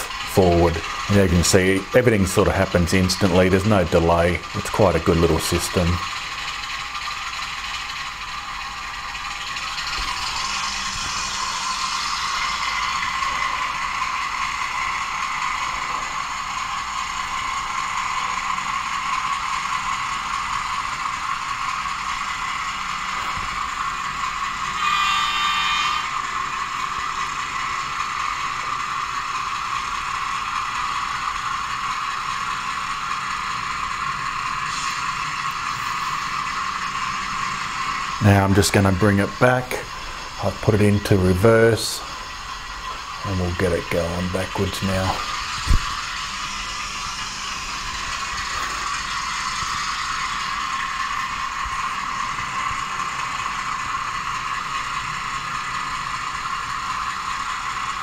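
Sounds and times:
model locomotive running: 0.0 - 58.0
short higher tone: 24.8 - 26.1.

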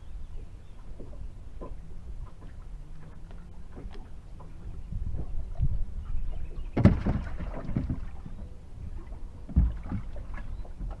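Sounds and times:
small waves slapping boat hull: 0.0 - 11.0
wind rumble on microphone: 0.0 - 11.0.

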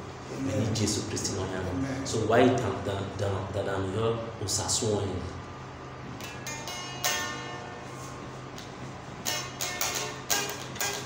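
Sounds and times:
clean electric guitar notes: 6.2 - 11.0.

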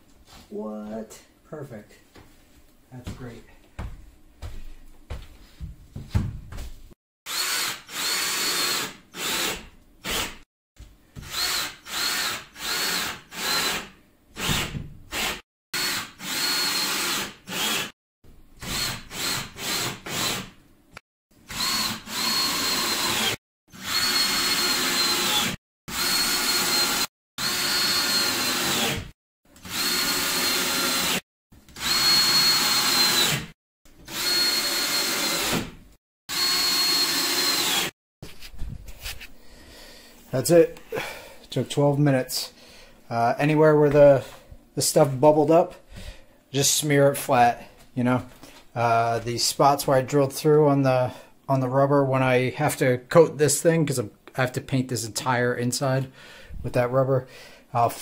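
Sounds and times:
cordless drill driving screws: 7.3 - 10.4, 11.2 - 17.9, 18.6 - 20.5, 21.5 - 31.2, 31.8 - 35.7, 36.3 - 37.9.

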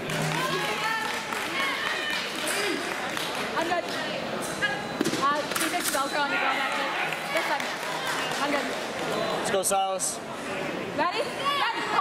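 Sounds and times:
chatter in large hall: 0.0 - 12.0.

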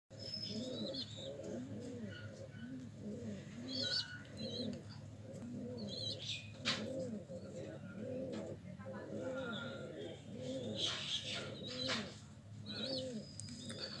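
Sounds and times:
pigeons cooing: 0.1 - 14.0.

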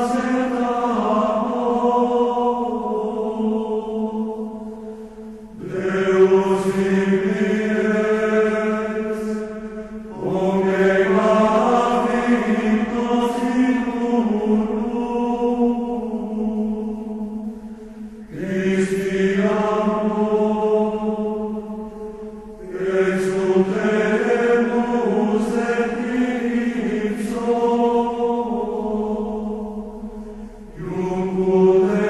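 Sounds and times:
voices singing a hymn: 0.0 - 32.0.

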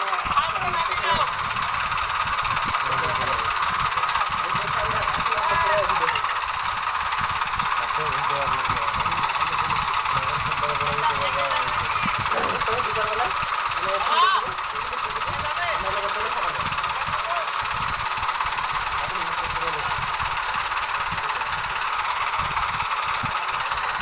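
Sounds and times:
diesel tractor engines: 0.0 - 24.0
men calling out: 7.7 - 17.6.

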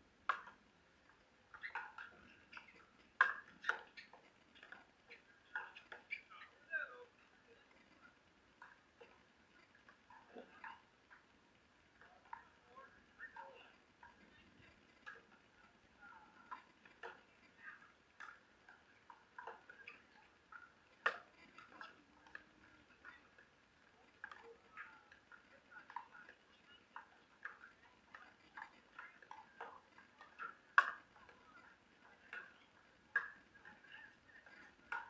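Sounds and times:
paddles hitting plastic ball: 0.2 - 6.3, 16.5 - 23.5, 24.1 - 35.0.

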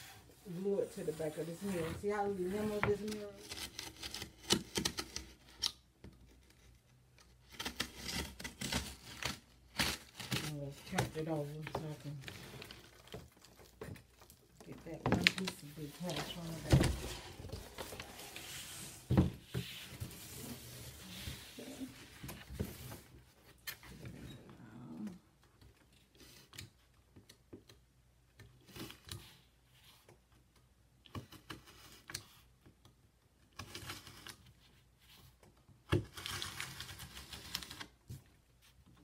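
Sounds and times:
cardboard rustling and scraping: 0.0 - 5.5, 7.4 - 24.3.

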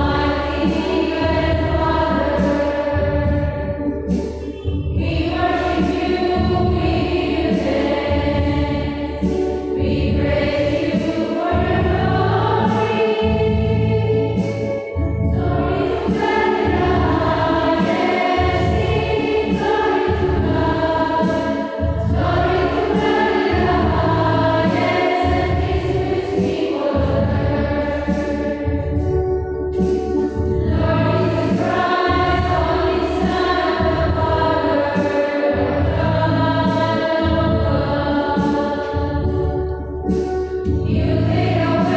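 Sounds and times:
choir singing a hymn: 0.0 - 41.9
instrumental accompaniment: 0.0 - 41.9.

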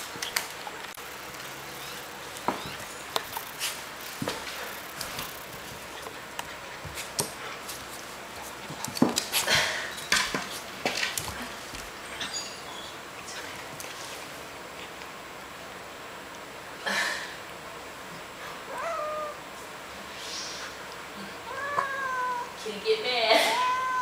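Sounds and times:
paws knocking and scraping: 0.0 - 12.3
animals scuffling on tile floor: 0.0 - 15.2.

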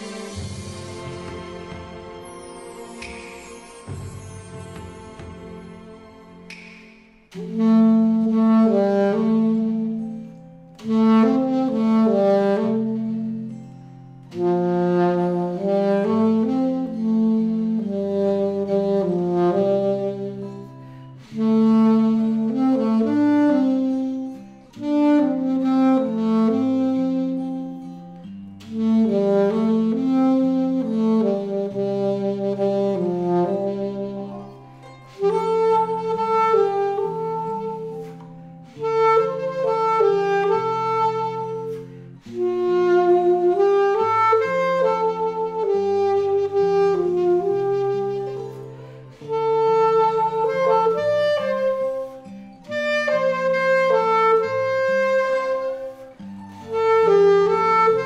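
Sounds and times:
alto saxophone melody: 0.0 - 58.0.

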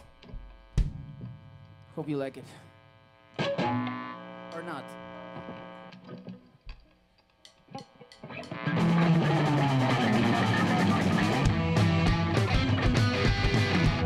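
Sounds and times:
kick drum beats: 0.3 - 1.4
live rock band playing: 8.1 - 14.0.

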